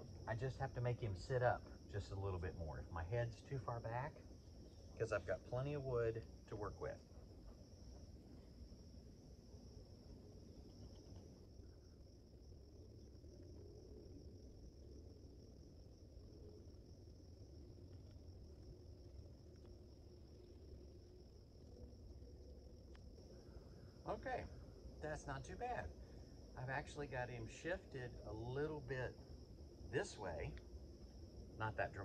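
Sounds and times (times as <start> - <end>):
crickets chirping: 0.0 - 32.0.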